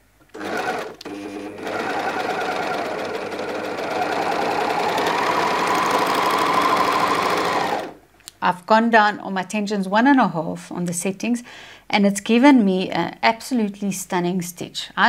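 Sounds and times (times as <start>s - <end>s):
overlocker stitching fabric: 0.3s - 8.0s.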